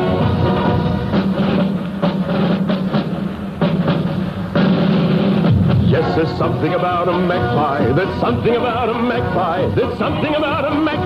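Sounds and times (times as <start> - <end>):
band playing with drums: 0.0 - 11.0.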